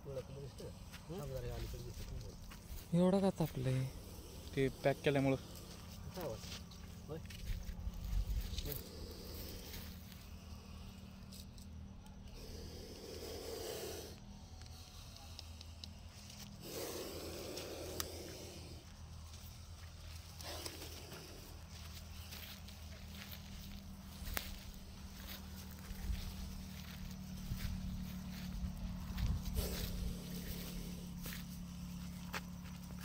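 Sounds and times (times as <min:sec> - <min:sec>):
steady low hum: 0:00.0 - 0:33.0
snake hissing: 0:00.4 - 0:11.6, 0:12.2 - 0:32.6.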